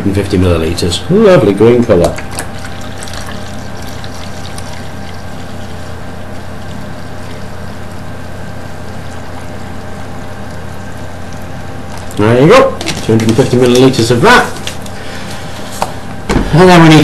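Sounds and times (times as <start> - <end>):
liquid pouring into plastic jug: 1.8 - 15.7.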